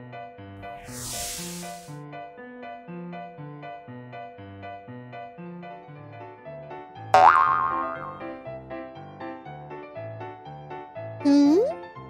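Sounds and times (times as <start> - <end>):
springy cartoon sound effect: 11.3 - 11.7
cartoon music with bass line: 11.3 - 11.8.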